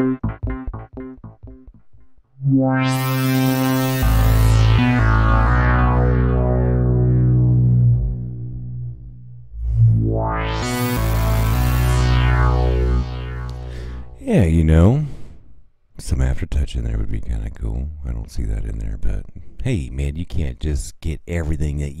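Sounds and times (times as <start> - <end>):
synthesizer chords with filter sweeps: 0.0 - 1.8, 2.4 - 14.2.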